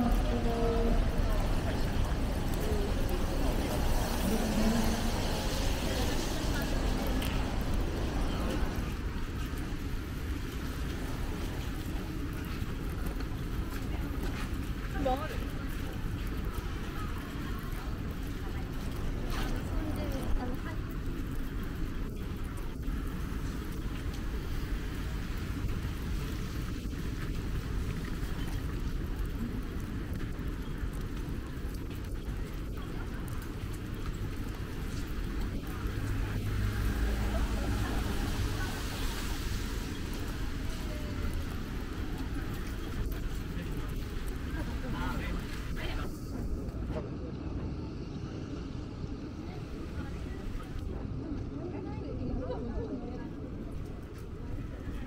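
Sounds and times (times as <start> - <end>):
indistinct voices: 0.0 - 8.9
light rain: 0.0 - 55.0
traffic rumble: 0.0 - 55.0.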